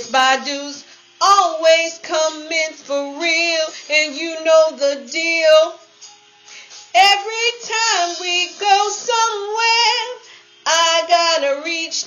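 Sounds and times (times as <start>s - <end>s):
woman singing unaccompanied: 0.0s - 6.0s, 6.9s - 12.0s.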